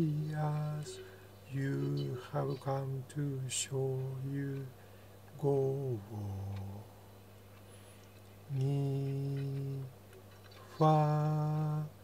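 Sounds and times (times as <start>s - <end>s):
man singing low note: 0.0s - 4.7s, 5.4s - 6.9s, 10.8s - 12.0s
faint steady hum: 0.0s - 12.0s.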